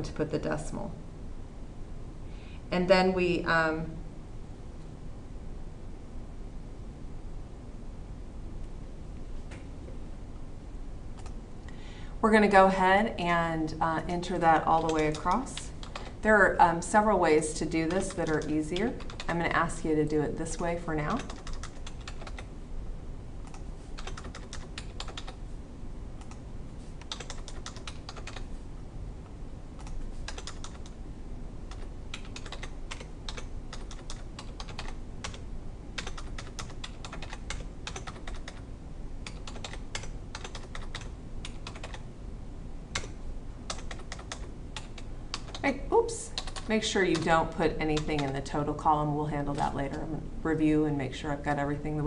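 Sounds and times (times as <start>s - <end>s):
computer keyboard typing: 14.7s - 16.2s, 17.8s - 19.4s, 21.0s - 22.5s, 23.4s - 25.4s, 26.2s - 26.4s, 27.0s - 28.5s, 29.8s - 31.0s, 31.7s - 35.4s, 36.0s - 42.0s, 42.9s - 45.7s, 46.4s - 48.5s.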